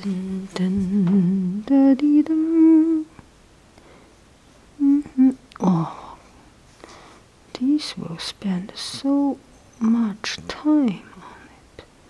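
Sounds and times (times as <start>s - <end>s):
person humming: 0.0s - 3.1s, 4.8s - 6.3s.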